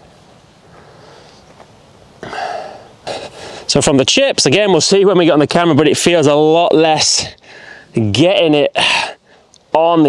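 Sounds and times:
man breathing noisily: 0.7s - 1.6s, 2.2s - 3.7s, 7.4s - 8.0s, 8.8s - 9.6s.

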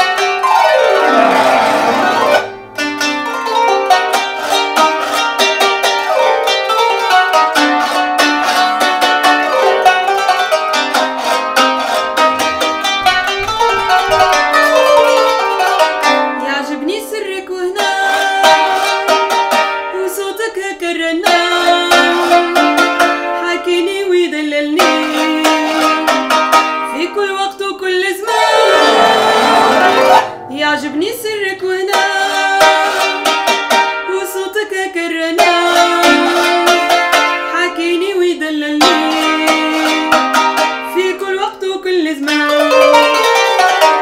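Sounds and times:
plucked zither melody: 0.0s - 44.0s.

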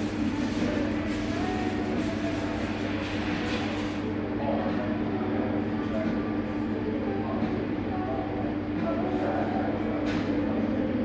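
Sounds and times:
steady low hum: 0.0s - 11.0s
murmur of distant conversation: 2.2s - 11.0s.

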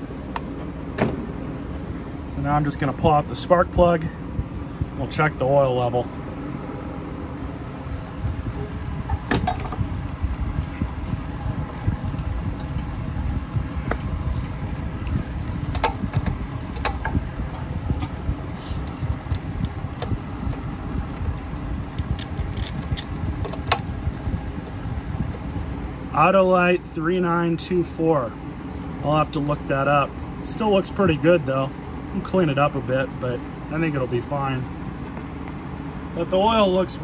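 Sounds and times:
low background hum: 0.0s - 37.0s.

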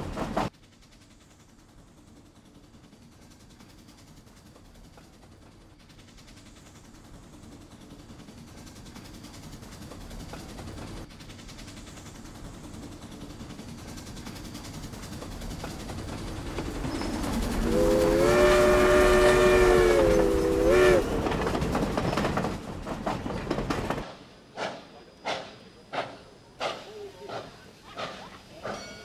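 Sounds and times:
train rumbling: 0.0s - 29.0s
locomotive whistle: 17.0s - 21.3s.

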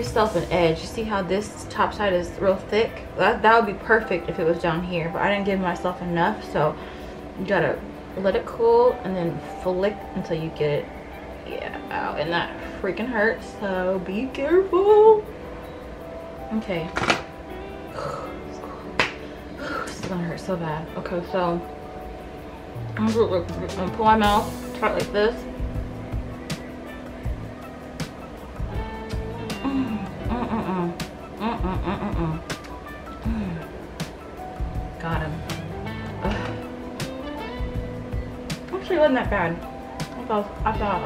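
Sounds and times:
woman's voice: 0.0s - 6.8s, 7.4s - 15.3s, 16.5s - 17.2s, 19.6s - 21.7s, 22.9s - 25.5s, 29.6s - 32.5s, 34.9s - 35.6s, 38.7s - 41.0s
soft background music: 0.0s - 41.0s.

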